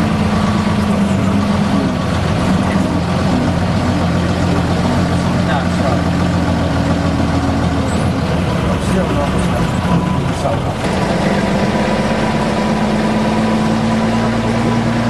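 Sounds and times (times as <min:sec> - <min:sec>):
bus engine droning: 0:00.0 - 0:15.0.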